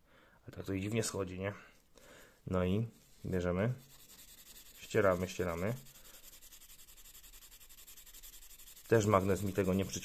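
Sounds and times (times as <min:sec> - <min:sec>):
background hiss: 0:00.0 - 0:10.0
pad rubbing on metal ring: 0:03.8 - 0:10.0.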